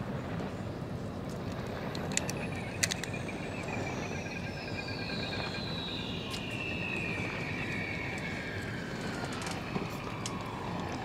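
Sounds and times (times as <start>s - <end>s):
high-pitched whine falling: 2.4s - 11.0s.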